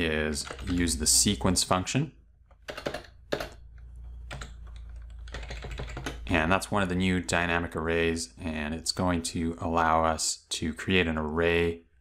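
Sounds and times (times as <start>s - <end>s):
computer keyboard typing: 0.3s - 1.0s, 2.5s - 6.3s.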